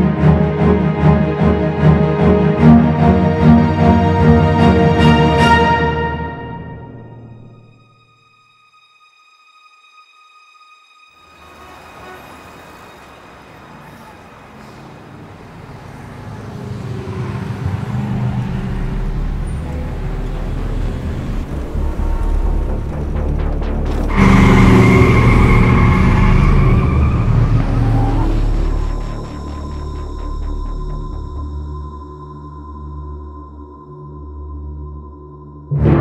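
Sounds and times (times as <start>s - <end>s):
loud vehicle with held tones: 11.2s - 32.1s
road traffic rumble: 11.4s - 31.8s.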